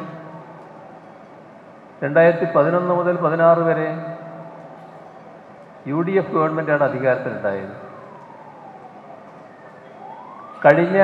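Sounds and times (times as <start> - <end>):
microphone background hiss: 0.0 - 11.0
man speaking into microphone: 2.0 - 4.2, 5.9 - 7.8, 10.6 - 11.0.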